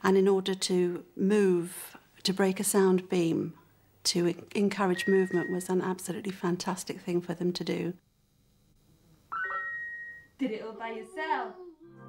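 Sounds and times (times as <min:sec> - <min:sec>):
synthesized bright tone: 0:09.3 - 0:10.4.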